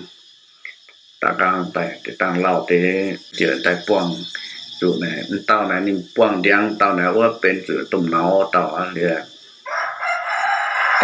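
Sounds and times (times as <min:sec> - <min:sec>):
long bird call: 0:00.0 - 0:11.0
person speaking: 0:01.2 - 0:09.2.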